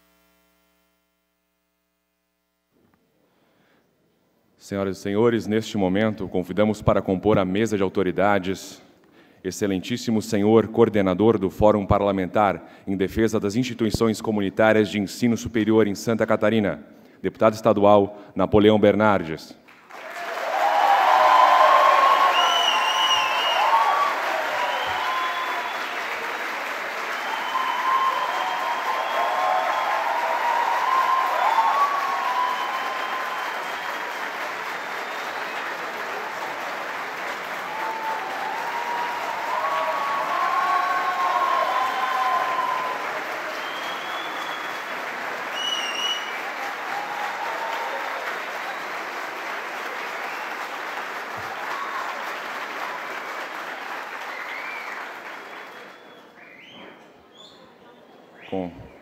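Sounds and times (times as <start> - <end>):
audience applauding: 19.7 - 56.4
cheering voices: 20.0 - 48.8, 51.3 - 53.2.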